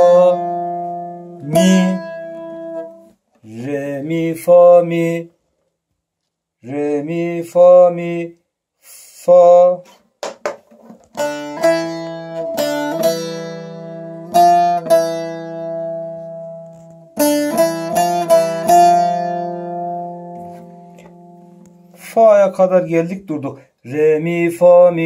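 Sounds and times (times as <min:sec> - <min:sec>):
plucked saz melody: 0:00.0 - 0:03.2, 0:10.8 - 0:22.6.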